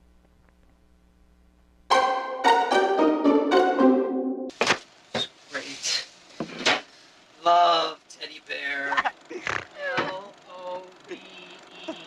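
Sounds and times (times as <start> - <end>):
held musical notes: 1.9 - 4.5.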